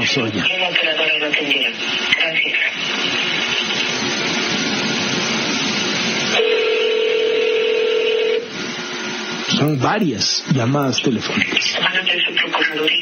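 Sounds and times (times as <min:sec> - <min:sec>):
telephone line hiss: 0:00.0 - 0:13.0
steady telephone tone: 0:06.3 - 0:08.5.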